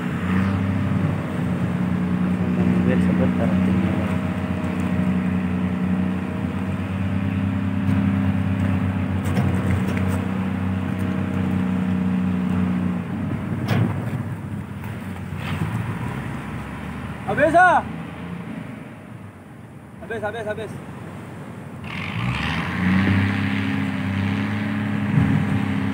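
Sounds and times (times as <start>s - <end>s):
large engine humming: 0.0s - 20.0s, 20.8s - 25.9s.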